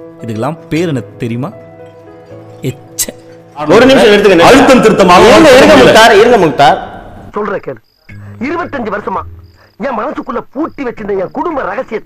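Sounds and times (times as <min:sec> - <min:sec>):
cricket chirping: 0:01.6 - 0:12.0
dialogue speech: 0:03.6 - 0:07.8.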